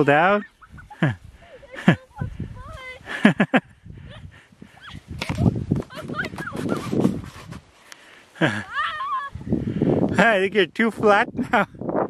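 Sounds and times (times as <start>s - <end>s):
people laughing: 0.0s - 2.1s, 3.0s - 4.2s, 8.4s - 9.0s.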